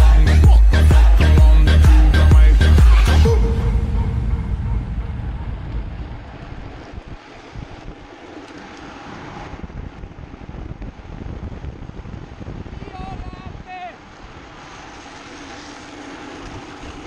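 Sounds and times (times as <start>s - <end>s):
music: 0.0s - 6.2s
wheels rumbling on asphalt: 0.0s - 17.0s
wind buffeting microphone: 2.4s - 17.0s.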